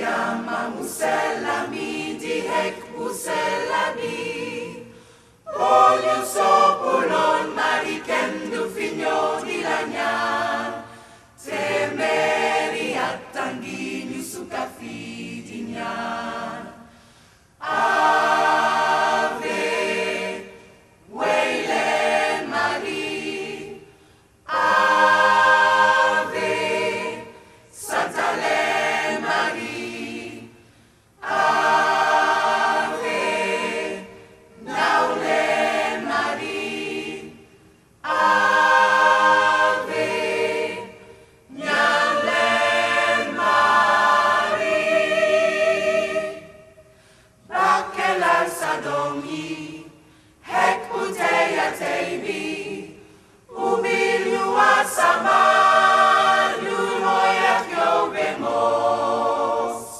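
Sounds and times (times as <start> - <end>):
gospel choir singing: 0.0 - 59.9.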